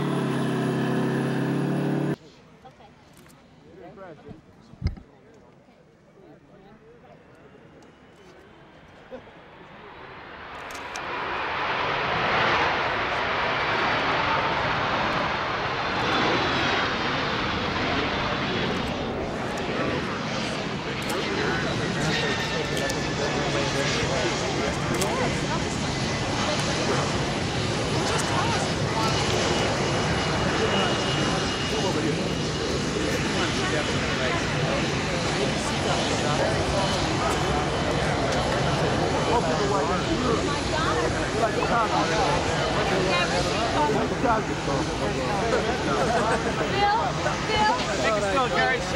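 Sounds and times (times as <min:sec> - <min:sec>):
high turbine whine: 0:00.0 - 0:02.2
jet engines rushing: 0:00.0 - 0:02.2, 0:07.8 - 0:48.9.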